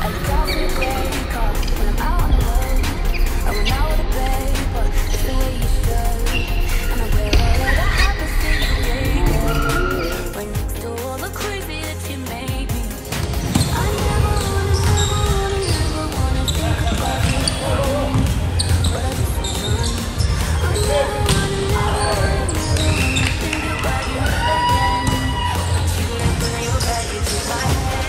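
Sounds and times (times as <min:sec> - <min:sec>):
music playing: 0:00.0 - 0:28.0
players' voices: 0:00.0 - 0:28.0.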